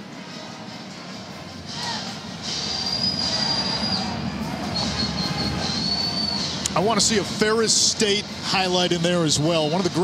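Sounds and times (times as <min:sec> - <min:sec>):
stadium crowd: 0:00.0 - 0:10.0
high whistle-like tone: 0:02.6 - 0:06.6.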